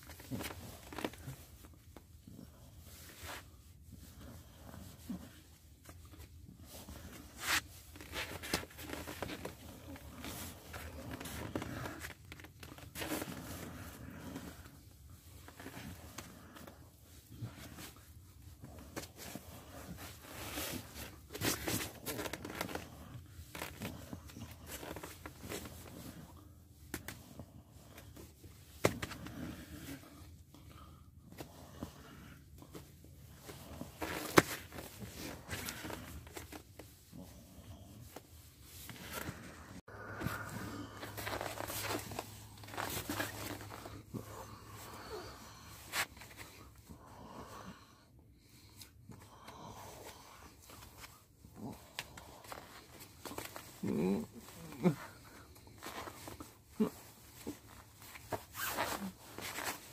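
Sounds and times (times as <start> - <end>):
nylon jacket rustling: 37.9 - 46.5, 55.6 - 59.9.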